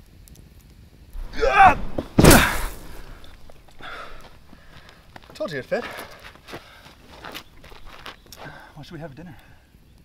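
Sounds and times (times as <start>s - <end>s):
footsteps on gravel: 1.2s - 8.6s.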